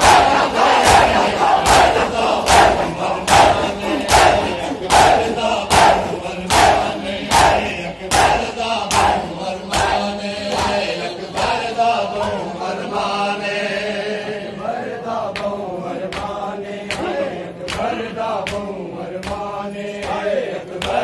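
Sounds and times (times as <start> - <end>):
men chanting in unison: 0.0 - 21.0
hands slapping bare chests: 17.7 - 20.2.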